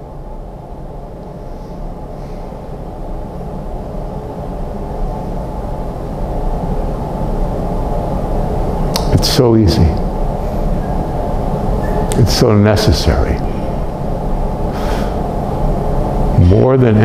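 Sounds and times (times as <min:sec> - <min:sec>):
faint hum: 0:00.0 - 0:17.0
steady low rumble: 0:00.0 - 0:17.0.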